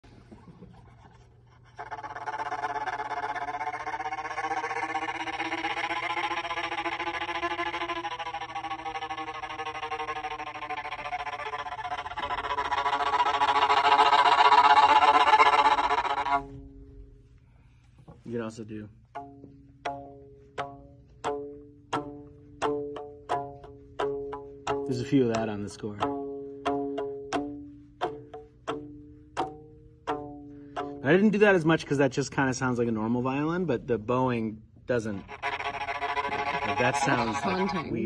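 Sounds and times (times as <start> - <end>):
bowed violin sustained tone: 0.8 - 33.6, 34.3 - 38.0.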